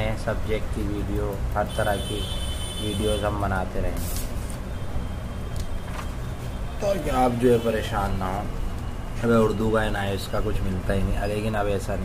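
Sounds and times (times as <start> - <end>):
man speaking: 0.0 - 4.1, 6.8 - 8.5, 9.2 - 12.0.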